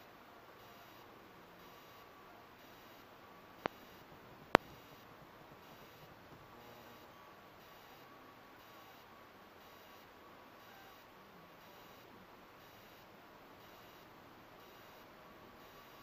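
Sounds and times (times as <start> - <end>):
faint steady hiss: 0.0 - 16.0.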